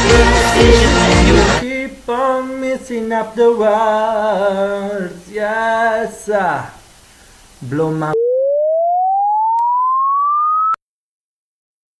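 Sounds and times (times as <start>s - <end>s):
person singing: 0.0s - 6.7s
rising sine tone bleep: 8.1s - 10.8s.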